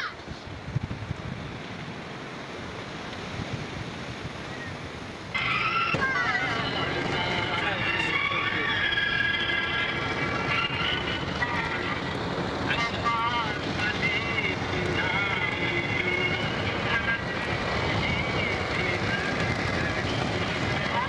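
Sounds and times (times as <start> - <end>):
road and engine noise in car: 0.0 - 21.0
faint wavering voice: 5.4 - 21.0.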